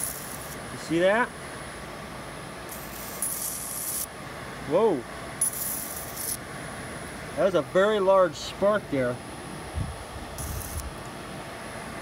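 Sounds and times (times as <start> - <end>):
electric arc crackling: 0.0 - 0.6, 2.7 - 4.1, 5.4 - 6.4, 10.4 - 11.0
faint high whine: 0.0 - 12.0.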